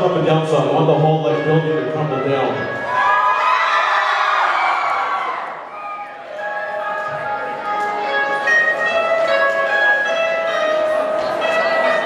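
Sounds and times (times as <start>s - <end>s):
bell-like keyboard notes: 0.0s - 2.9s, 6.2s - 12.0s
crowd cheering and shouting: 2.3s - 8.0s.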